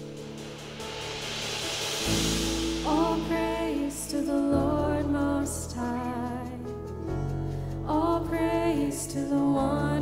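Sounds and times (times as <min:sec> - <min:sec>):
cymbal wash: 0:00.0 - 0:05.0
deep bass note: 0:00.0 - 0:05.3
person singing: 0:02.8 - 0:06.7, 0:07.8 - 0:10.0.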